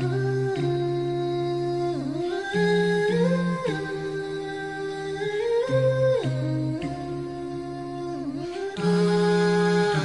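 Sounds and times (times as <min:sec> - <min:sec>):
voices humming in harmony: 0:00.0 - 0:10.0.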